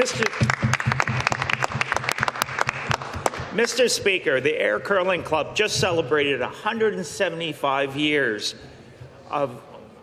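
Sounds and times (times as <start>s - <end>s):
crowd applauding: 0.0s - 3.8s.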